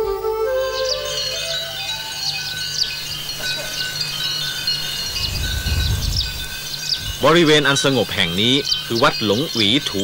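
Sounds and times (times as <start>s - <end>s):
metal chimes ringing: 1.1s - 10.0s
low rumble: 5.0s - 7.4s.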